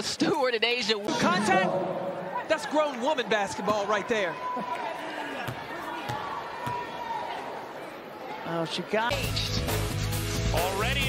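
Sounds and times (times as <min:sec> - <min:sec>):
arena crowd noise: 0:00.0 - 0:11.0
ball bouncing on hardwood court: 0:05.4 - 0:06.9.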